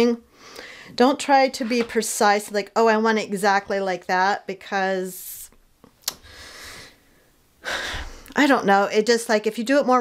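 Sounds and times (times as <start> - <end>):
woman breathing: 0.3 - 1.0, 6.2 - 8.4.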